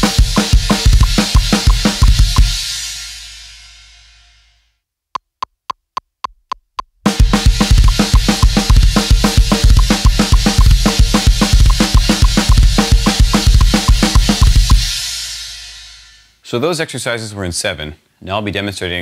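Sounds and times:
heavy metal drumming: 0:00.0 - 0:03.2, 0:07.1 - 0:16.2
count-in clicks: 0:07.8 - 0:08.8, 0:09.7 - 0:14.8.

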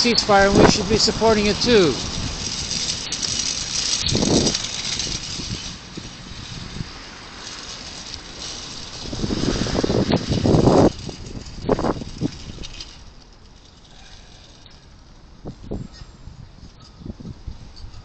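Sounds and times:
street traffic: 0:00.0 - 0:18.0
vehicles passing: 0:00.0 - 0:18.0.

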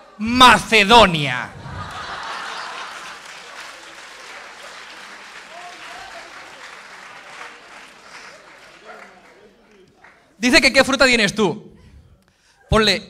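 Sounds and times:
audience applauding: 0:01.5 - 0:10.4.

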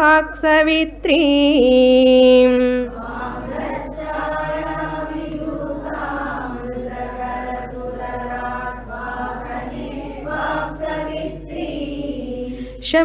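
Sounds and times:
teacher chanting: 0:02.4 - 0:13.0
group of voices chanting: 0:02.9 - 0:12.6.

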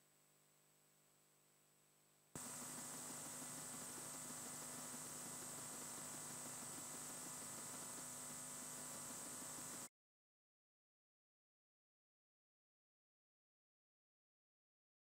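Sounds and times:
electronic hiss: 0:02.4 - 0:09.9
thin high whine: 0:02.4 - 0:09.9.

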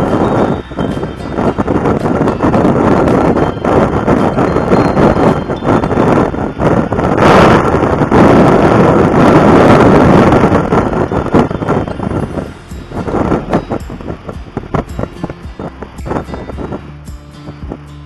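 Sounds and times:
wind buffeting microphone: 0:00.0 - 0:18.0.

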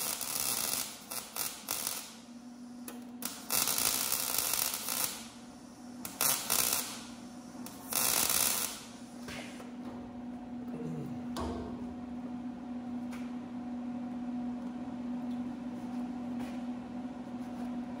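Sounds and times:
welding arc sizzling: 0:00.0 - 0:09.7
steady low hum: 0:00.0 - 0:18.0.

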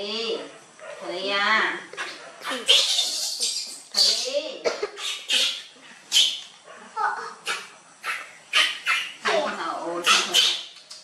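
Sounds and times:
wavering pitched call: 0:02.4 - 0:04.4, 0:05.0 - 0:06.5, 0:07.4 - 0:10.7.

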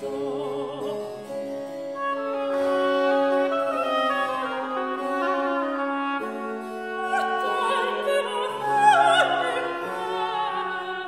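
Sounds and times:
bassoon long notes: 0:00.0 - 0:11.0
oboe long notes: 0:00.0 - 0:11.0.

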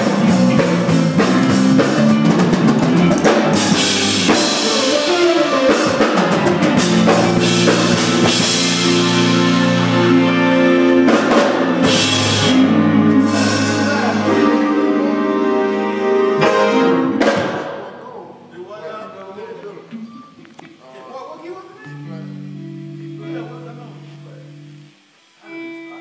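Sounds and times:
held electric guitar notes: 0:00.0 - 0:17.6, 0:21.8 - 0:26.0
drum kit playing: 0:00.0 - 0:18.0
cymbal crashes: 0:03.3 - 0:15.2.

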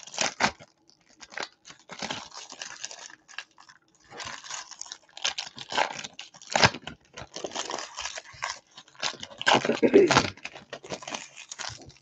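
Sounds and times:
foil wrappers crinkling and tearing: 0:00.0 - 0:12.0.

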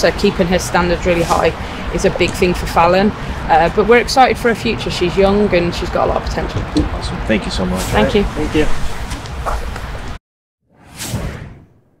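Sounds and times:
whoosh sound effect: 0:07.6 - 0:09.6, 0:10.8 - 0:11.7.

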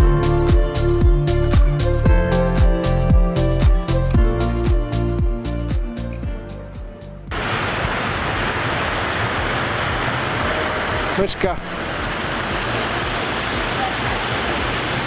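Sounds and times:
fountain water splashing: 0:07.3 - 0:15.0.

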